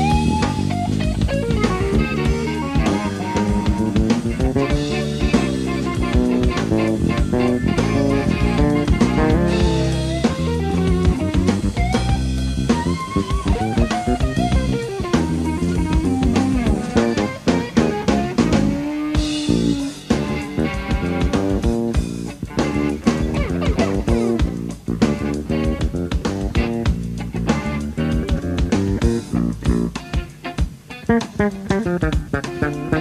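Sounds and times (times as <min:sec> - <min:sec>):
drum kit: 0:00.0 - 0:33.0
electric bass: 0:00.0 - 0:33.0
electric guitar lead lines: 0:00.0 - 0:33.0.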